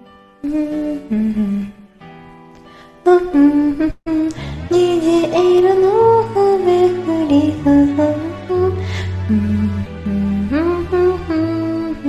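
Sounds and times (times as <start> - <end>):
woman humming: 0.4 - 1.8.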